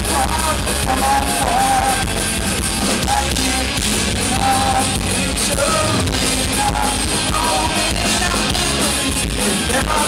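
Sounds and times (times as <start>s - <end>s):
punk rock band playing live: 0.0s - 10.0s.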